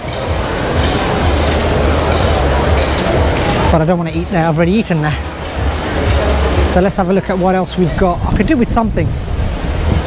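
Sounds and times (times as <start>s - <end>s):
continuous wash of noise: 0.0s - 10.0s.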